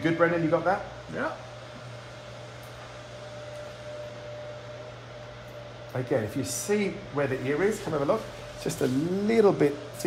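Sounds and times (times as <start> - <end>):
room hum and hiss: 0.0 - 10.0.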